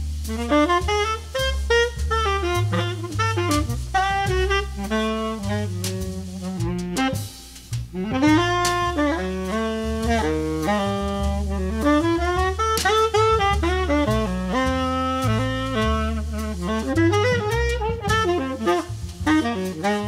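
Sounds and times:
double bass notes: 0.0s - 20.0s
jazz tenor saxophone: 0.0s - 20.0s.

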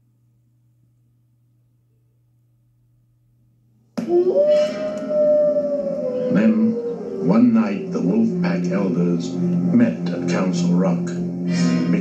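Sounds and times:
wolf howling: 4.0s - 9.5s.

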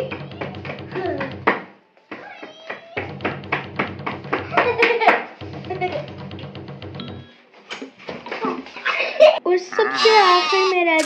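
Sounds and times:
child's voice wavering: 9.4s - 11.0s.

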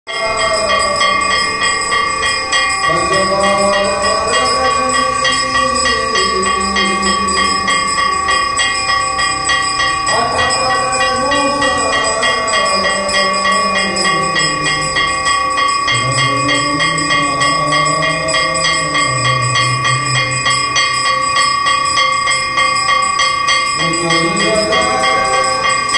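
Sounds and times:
voices singing a hymn: 0.1s - 20.7s, 23.8s - 25.9s
temple bells ringing rapidly: 0.1s - 25.9s.

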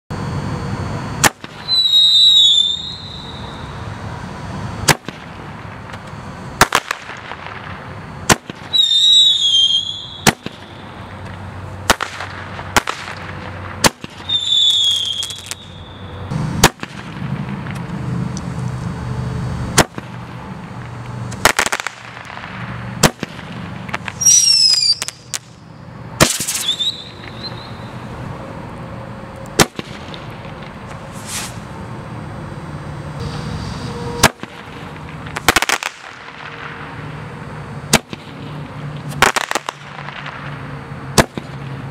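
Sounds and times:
whistle falling in pitch: 1.6s - 3.8s, 8.7s - 10.3s, 14.2s - 16.2s, 24.2s - 25.2s, 26.6s - 28.0s.

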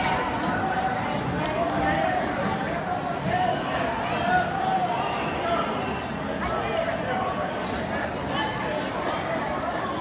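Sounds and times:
spectators and coaches calling out: 0.0s - 10.0s.

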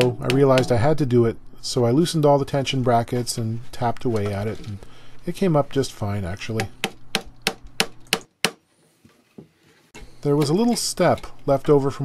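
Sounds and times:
hammer tapping wooden block: 0.0s - 0.8s.

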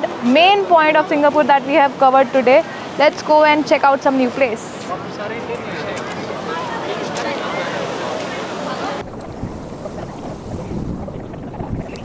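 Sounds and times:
crowd chatter: 0.0s - 9.1s
wind buffeting microphone: 0.0s - 12.0s.

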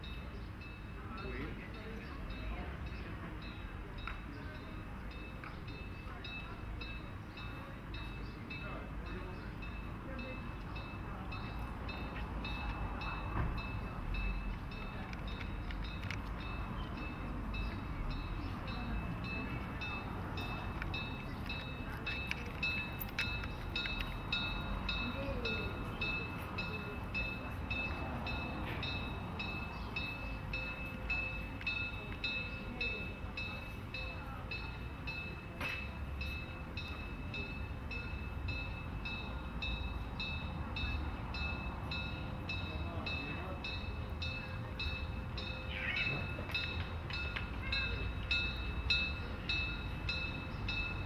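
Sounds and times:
passers-by chatting: 0.0s - 51.0s
steam locomotive approaching: 0.0s - 51.0s.

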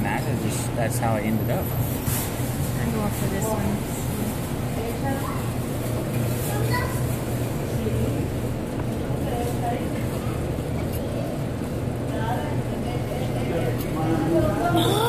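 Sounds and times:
distant voices chattering: 0.0s - 15.0s.

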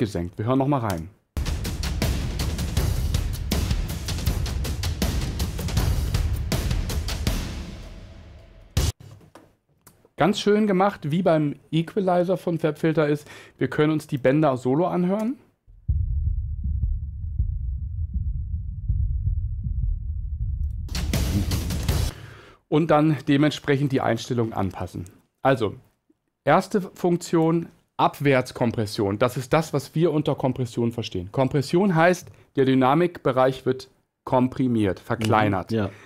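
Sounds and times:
drum loop: 1.4s - 9.0s, 20.4s - 22.1s.

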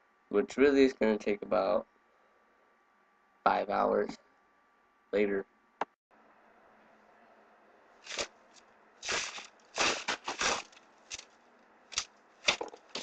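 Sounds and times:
paper and plastic wrapper rustling: 8.1s - 8.3s, 9.0s - 11.2s, 12.0s - 13.0s.

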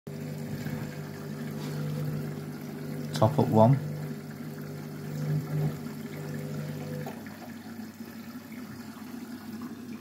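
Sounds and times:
washing machine running: 0.1s - 10.0s.

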